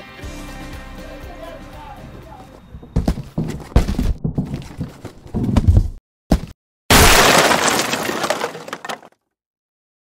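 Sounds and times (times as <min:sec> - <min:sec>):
crate smashing: 0:03.0 - 0:09.1
debris rattling and falling: 0:06.9 - 0:09.2.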